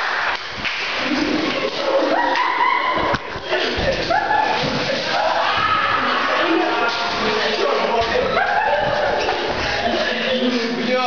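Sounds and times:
people yelling: 1.7s - 10.0s.

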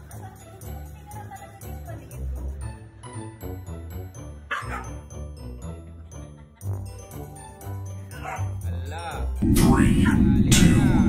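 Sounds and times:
background music: 0.0s - 11.0s
husky calling: 4.5s - 5.0s, 8.2s - 8.5s.

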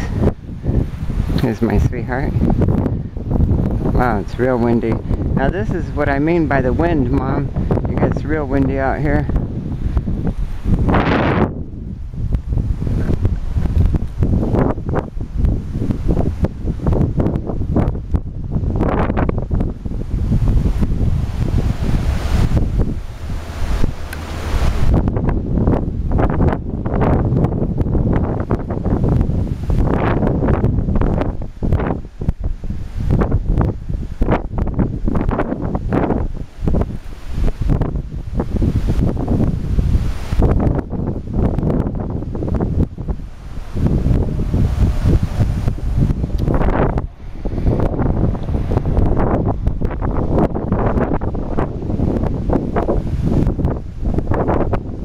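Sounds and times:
gusty wind buffeting microphone: 0.0s - 55.0s.

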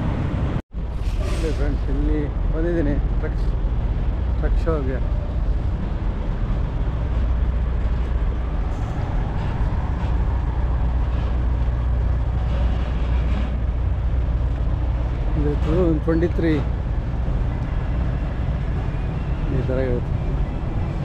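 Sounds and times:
truck engines idling: 0.0s - 21.0s.

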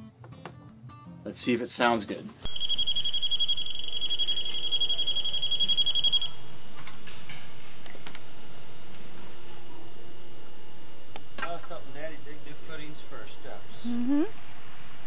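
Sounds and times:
tape hiss: 2.4s - 13.7s
high pulsing insect trill: 2.5s - 6.6s.

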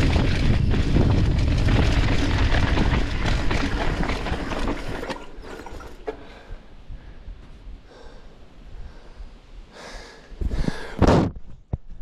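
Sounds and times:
wind rumble on microphone: 0.0s - 5.0s, 6.3s - 12.0s
person breathing hard: 6.1s - 11.1s.

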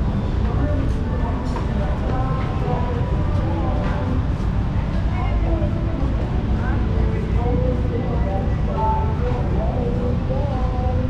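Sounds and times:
indistinct voices talking: 0.0s - 11.0s
low street rumble: 0.0s - 11.0s.

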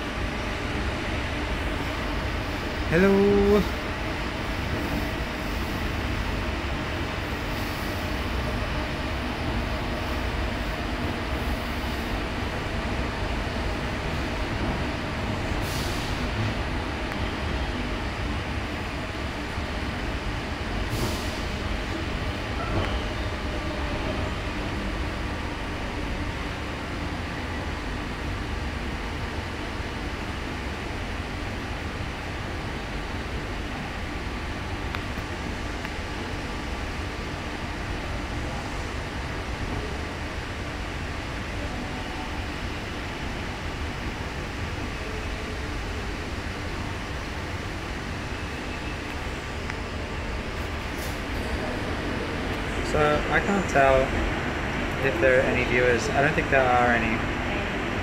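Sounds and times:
train rumbling: 0.0s - 58.0s.

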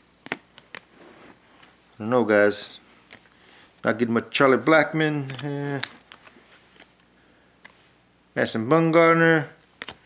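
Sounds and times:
cards clicking: 0.2s - 0.9s, 5.2s - 7.8s, 9.6s - 10.0s
cards rustling: 0.2s - 2.0s, 2.8s - 3.8s, 5.1s - 7.9s, 9.6s - 10.0s.

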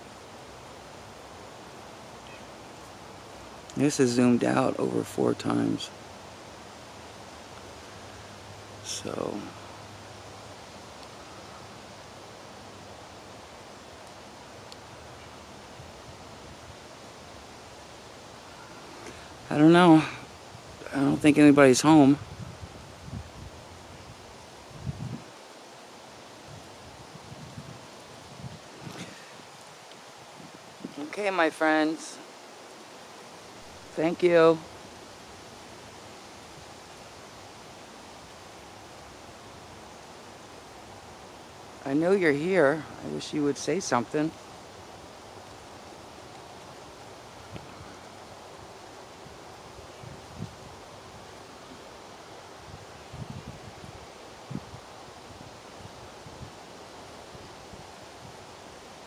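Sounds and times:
outdoor background hiss: 0.0s - 59.0s
wind through woods: 0.0s - 59.0s.

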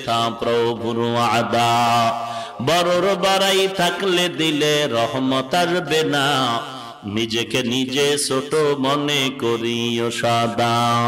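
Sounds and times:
man chanting over a microphone: 0.0s - 11.0s.

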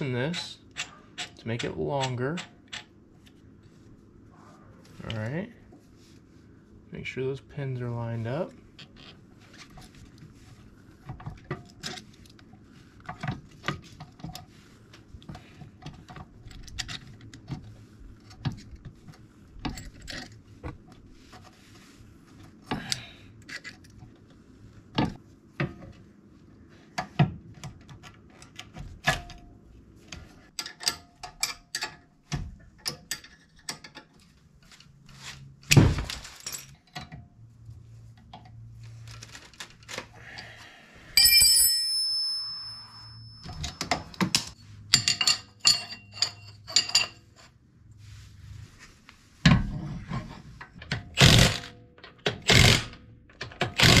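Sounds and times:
metal tools clicking and scraping: 32.8s - 34.2s, 41.2s - 47.5s
struck metal part ringing: 41.2s - 46.9s
impact wrench bursts: 51.1s - 51.7s, 52.4s - 53.0s, 53.7s - 54.0s.

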